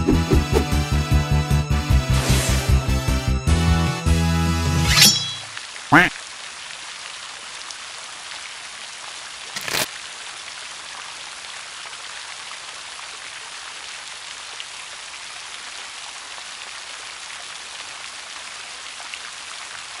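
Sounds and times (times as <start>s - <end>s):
steady rain falling: 5.4s - 20.0s.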